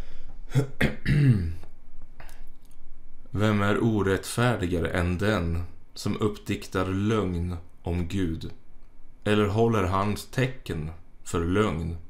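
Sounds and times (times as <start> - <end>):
man clearing his throat: 0.5 - 1.6.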